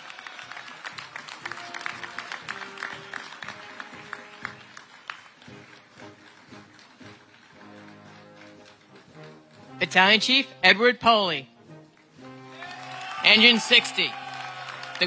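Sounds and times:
audience applause: 0:00.0 - 0:09.8, 0:12.0 - 0:15.0
soft instrumental music: 0:01.0 - 0:14.1.

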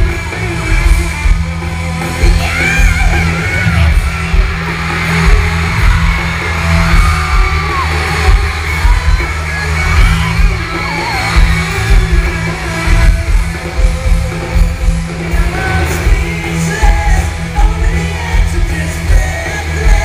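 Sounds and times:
fans screaming and whooping: 0:00.0 - 0:20.0
guitars: 0:00.0 - 0:20.0
live pop-rock band playing: 0:00.0 - 0:20.0
steady drum beat: 0:00.0 - 0:20.0
person singing: 0:06.9 - 0:20.0.

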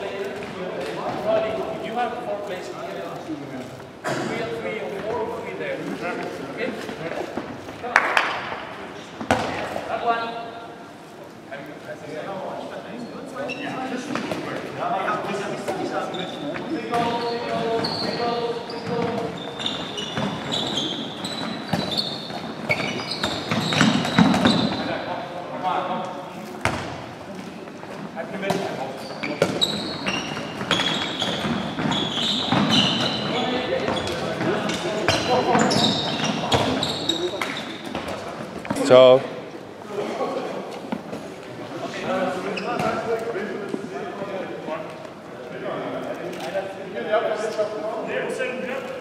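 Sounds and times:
balls bouncing on wooden floor: 0:09.2 - 0:09.8, 0:18.8 - 0:24.8, 0:28.5 - 0:38.8.

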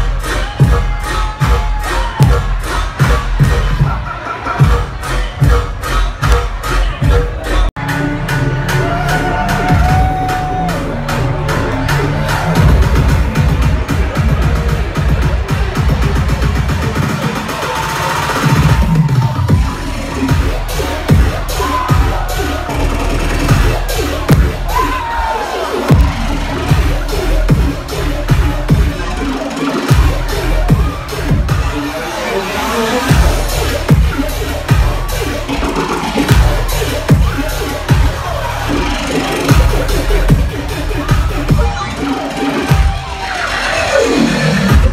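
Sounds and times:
dubstep music with choppy bass: 0:00.0 - 0:44.9.

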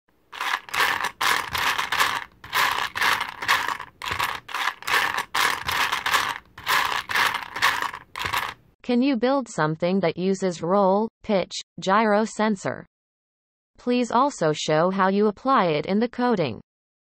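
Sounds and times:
scratchy clattering bursts: 0:00.3 - 0:08.6.

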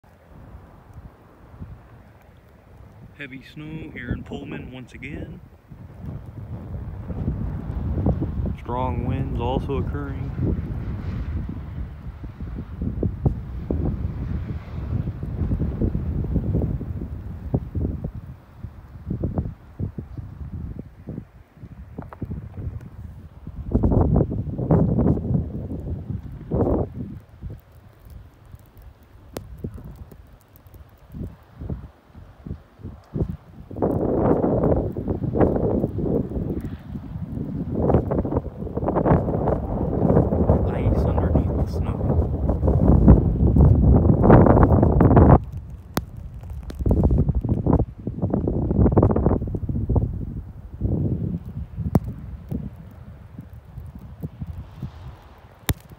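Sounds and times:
gusty wind buffeting microphone: 0:00.0 - 0:55.9.

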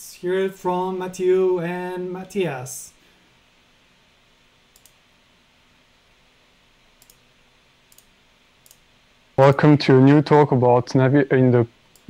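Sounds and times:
room hiss: 0:00.0 - 0:12.0
faint clicks: 0:04.7 - 0:05.0, 0:07.0 - 0:07.2, 0:07.9 - 0:08.9.

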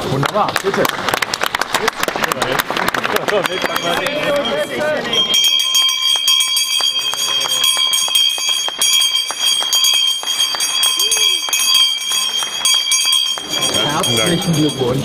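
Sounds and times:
brass handbell ringing: 0:03.4 - 0:15.0.

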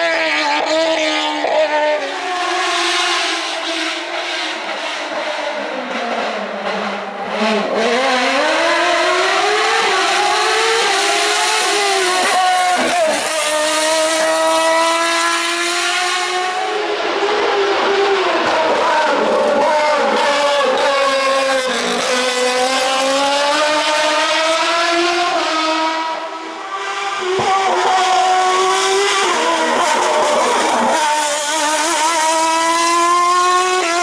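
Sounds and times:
race car engine at high revs: 0:00.0 - 0:34.0.

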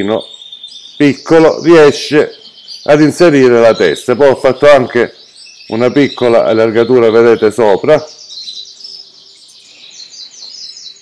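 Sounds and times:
canaries singing: 0:00.0 - 0:11.0.

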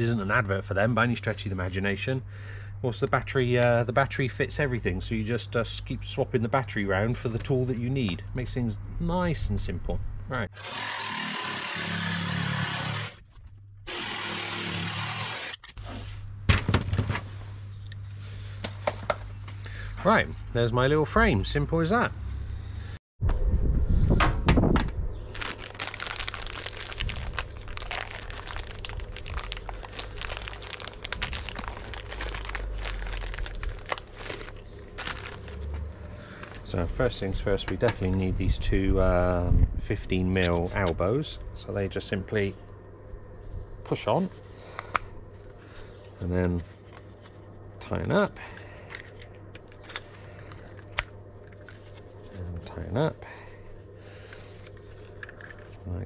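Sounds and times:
plastic packaging crinkling: 0:25.3 - 0:36.7.

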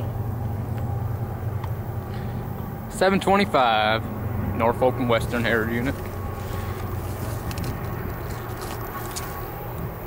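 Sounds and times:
diesel locomotives rumbling: 0:00.0 - 0:10.0.

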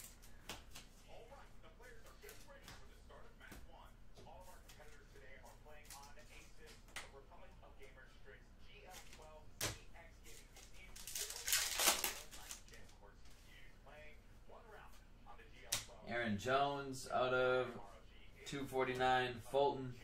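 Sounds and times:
trading cards handled: 0:08.9 - 0:12.9
foil wrapper tearing open: 0:11.0 - 0:12.7.

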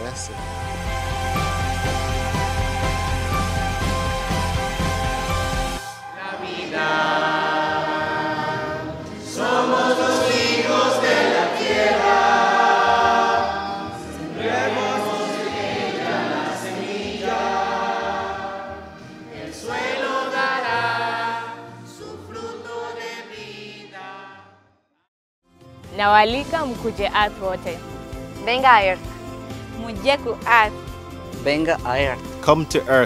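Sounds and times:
choir singing: 0:00.0 - 0:24.7.

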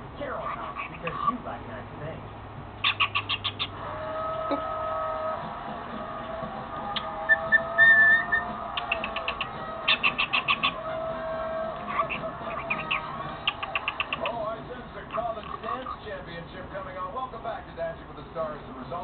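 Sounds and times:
cockatiel high whistle: 0:07.0 - 0:09.4
cockatiel clicking chirps: 0:07.0 - 0:10.8, 0:11.9 - 0:14.4.

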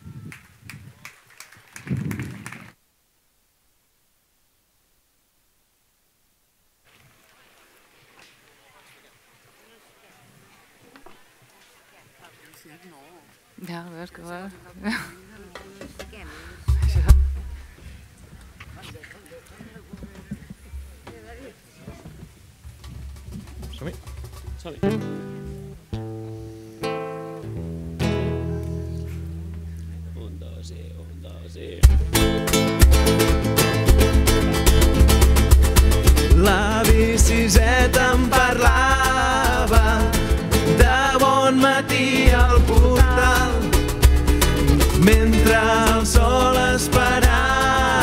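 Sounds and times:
faint chatter: 0:07.1 - 0:25.2
microphone handling thump: 0:15.8 - 0:19.0.

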